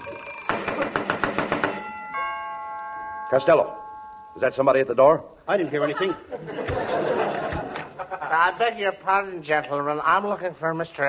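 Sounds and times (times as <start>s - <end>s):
doorbell ringing: 0.0s - 4.8s.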